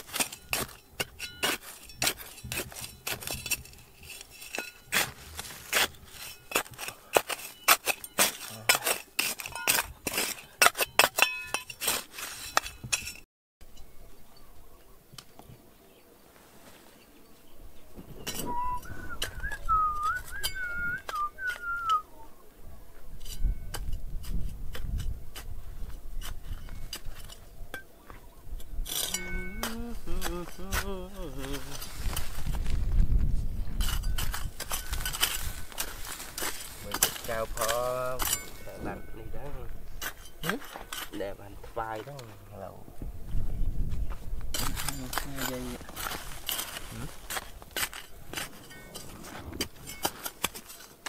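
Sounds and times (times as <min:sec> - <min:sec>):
metal trowel digging stony soil: 0:00.0 - 0:13.3, 0:18.2 - 0:22.0, 0:23.1 - 0:33.1, 0:33.7 - 0:42.8, 0:44.5 - 0:51.0
thin wavering whistle: 0:18.3 - 0:22.3
person's voice: 0:29.2 - 0:31.9.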